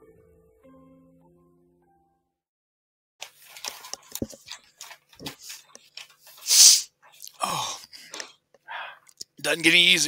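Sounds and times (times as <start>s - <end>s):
man blowing nose: 6.4s - 6.9s
man sniffling: 6.4s - 9.0s.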